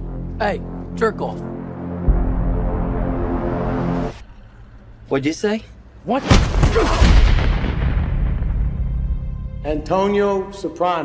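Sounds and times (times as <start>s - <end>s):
deep cinematic boom: 1.9s - 5.0s, 6.3s - 9.8s.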